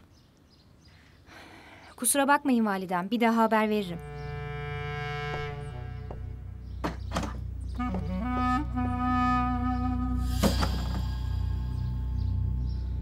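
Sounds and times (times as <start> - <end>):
slow wind instrument melody: 4.0 - 6.6, 7.7 - 12.6
sharp knocks: 6.8 - 8.1
low drone: 7.4 - 13.0.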